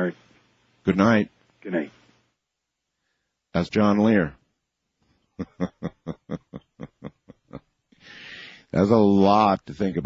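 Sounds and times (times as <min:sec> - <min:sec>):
man laughing: 0:05.4 - 0:07.8.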